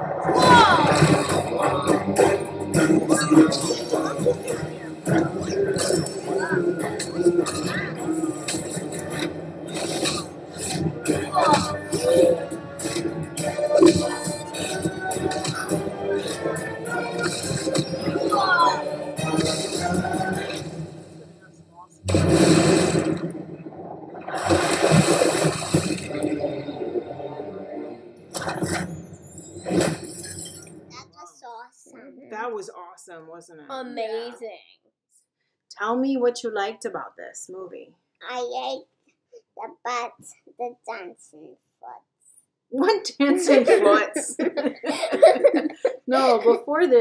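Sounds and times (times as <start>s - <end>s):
sharp impacts: 22.0s - 26.3s
rushing water splash: 22.1s - 26.3s.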